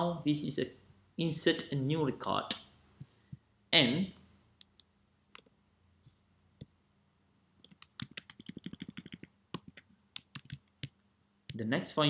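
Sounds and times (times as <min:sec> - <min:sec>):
keyboard and mouse clicks: 0:04.6 - 0:05.6, 0:07.6 - 0:11.6.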